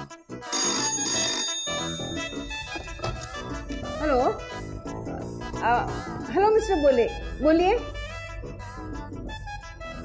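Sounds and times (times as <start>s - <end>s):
desk telephone bell ringing: 0.4s - 3.7s.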